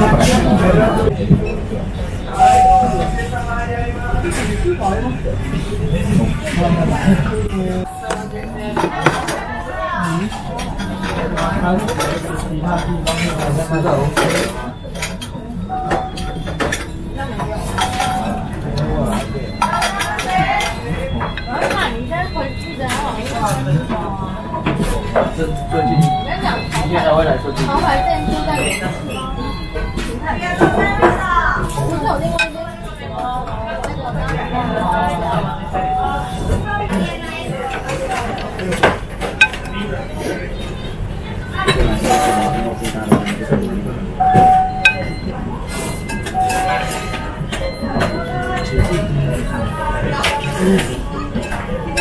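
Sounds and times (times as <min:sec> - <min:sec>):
indistinct background voices: 0:00.0 - 0:52.0.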